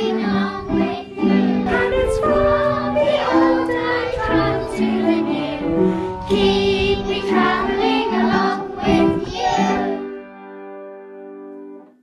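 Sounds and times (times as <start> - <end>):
children singing: 0.0 - 10.2.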